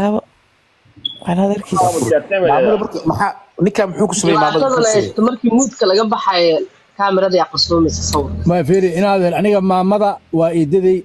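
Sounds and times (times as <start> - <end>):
person talking over video call: 1.0 - 6.6, 7.4 - 11.0.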